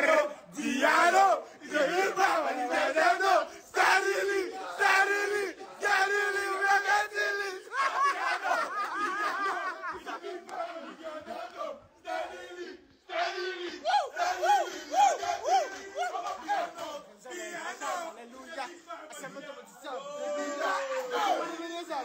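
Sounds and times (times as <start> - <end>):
men shouting and chanting: 0.0 - 22.0.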